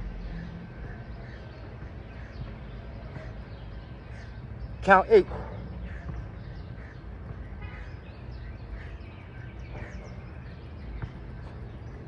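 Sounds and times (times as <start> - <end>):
steady low rumble: 0.0 - 2.0.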